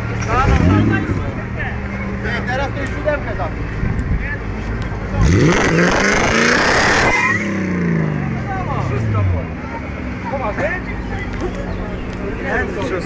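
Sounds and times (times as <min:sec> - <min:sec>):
car engine idling and revving: 0:00.0 - 0:13.0.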